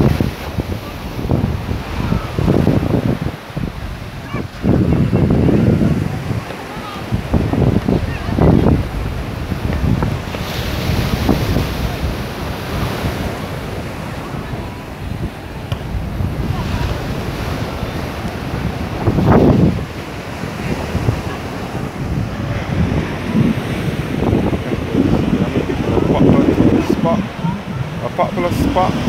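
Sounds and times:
surf washing on beach: 0.0 - 29.0
wind buffeting microphone: 0.0 - 29.0.

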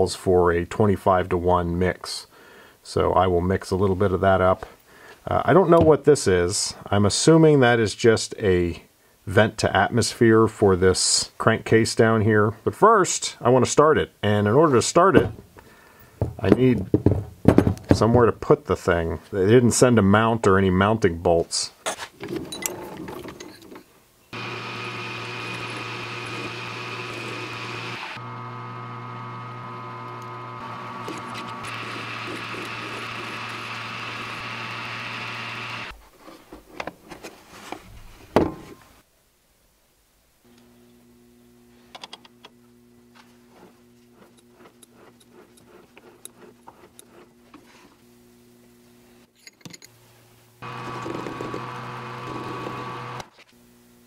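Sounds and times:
metal lathe running: 24.4 - 35.9, 50.6 - 53.2.

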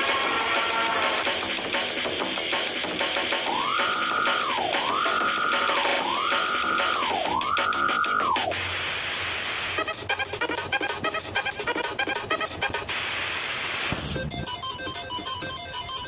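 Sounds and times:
background music with busy beat: 0.0 - 16.0.

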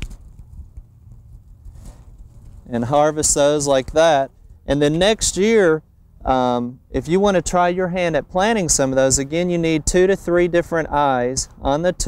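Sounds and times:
soft knocks and crumbling soil: 0.0 - 4.6.

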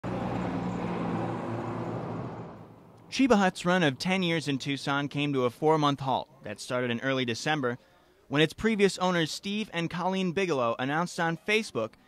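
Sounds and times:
vehicle engine humming: 0.0 - 4.2
road noise: 0.0 - 4.9.

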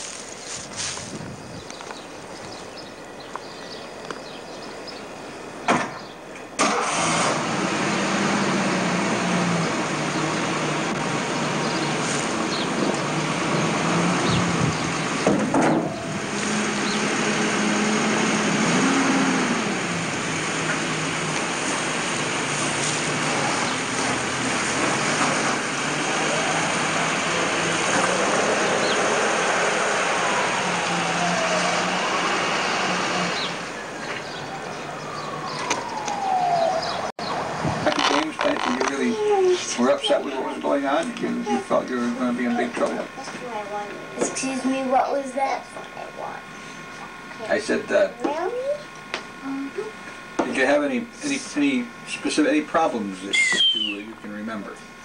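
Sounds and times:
engine starting and running: 5.6 - 44.2
engine revving: 6.6 - 39.1.

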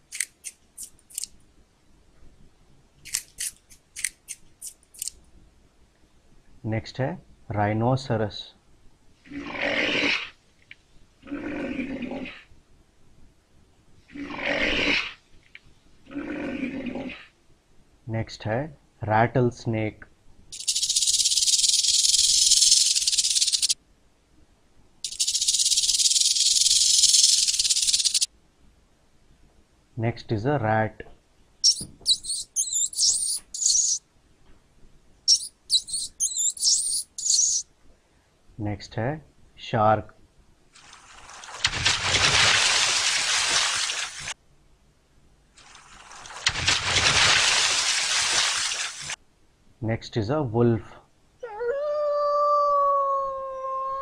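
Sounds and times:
rat squeaking: 20.6 - 23.8, 25.1 - 28.3, 31.6 - 34.0, 35.3 - 37.6.

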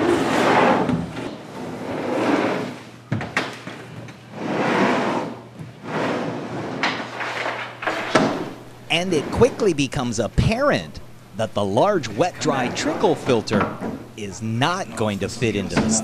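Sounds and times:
filter scraping over tile floor: 0.0 - 2.9, 4.3 - 8.1.

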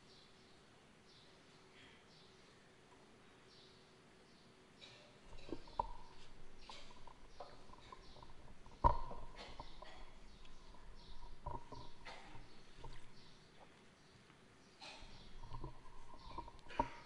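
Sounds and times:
microphone handling clicks and rustling: 5.3 - 13.7, 14.9 - 17.0.

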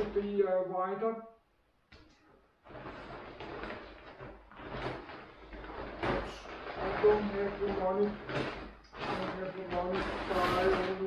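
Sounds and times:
plastic bag rustling and crinkling: 0.0 - 0.4, 2.6 - 11.0.

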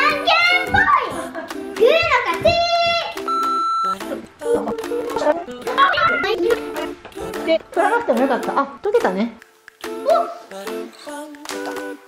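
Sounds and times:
light background music: 0.0 - 12.0
high electronic beep: 3.3 - 4.0.

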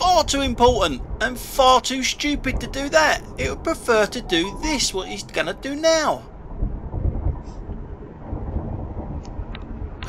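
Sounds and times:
road and tyre noise in car: 0.0 - 10.0.

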